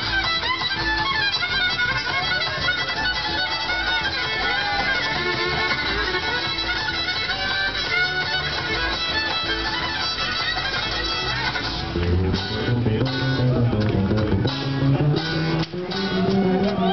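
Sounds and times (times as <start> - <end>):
acoustic guitar: 0.0 - 16.9
fiddle melody: 0.0 - 16.9
upright bass: 0.0 - 16.9.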